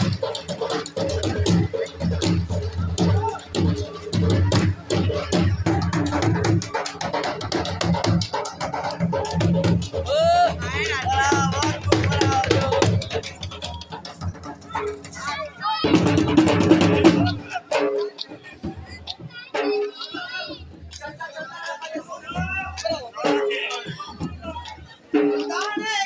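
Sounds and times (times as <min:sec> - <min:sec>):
voices shouting: 0:00.0 - 0:07.7, 0:08.3 - 0:26.0
dhol drumming: 0:00.0 - 0:26.0.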